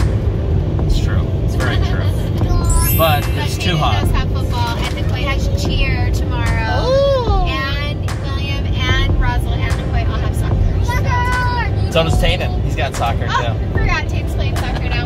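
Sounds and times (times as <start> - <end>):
car road and engine rumble: 0.0 - 15.0.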